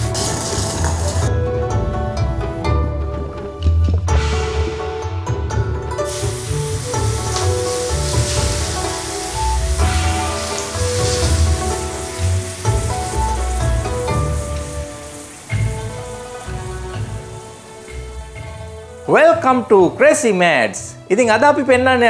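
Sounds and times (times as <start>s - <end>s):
hot oil sizzling: 0.0s - 1.3s, 6.0s - 19.4s
background music with bass pulse: 0.0s - 19.6s.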